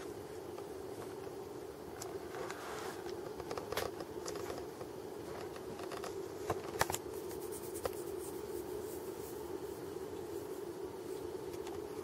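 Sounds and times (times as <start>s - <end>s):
fur rubbing on microphone: 2.5s - 3.0s, 7.2s - 11.2s.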